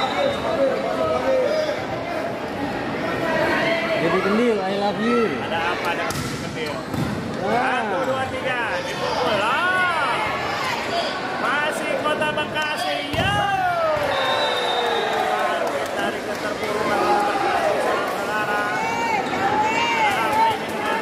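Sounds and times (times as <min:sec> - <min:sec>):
players and spectators shouting: 0:08.8 - 0:15.8, 0:16.7 - 0:21.0.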